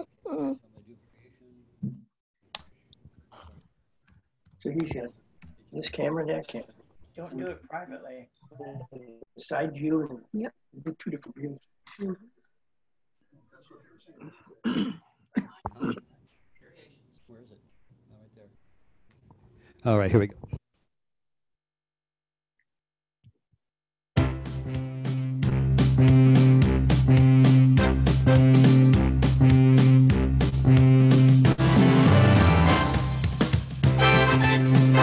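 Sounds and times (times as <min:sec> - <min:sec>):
person coughing: 0:14.2 - 0:16.1.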